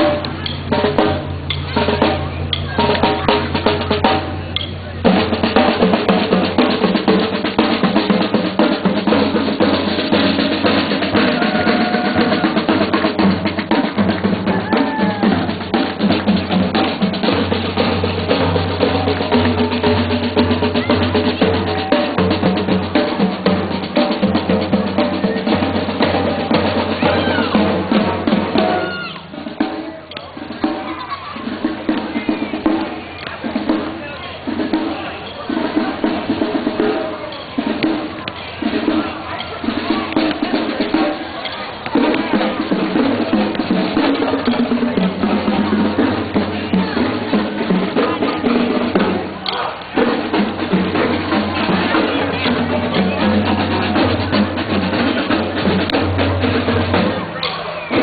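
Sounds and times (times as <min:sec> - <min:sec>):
snare drum rolls: 0:00.0 - 0:58.0.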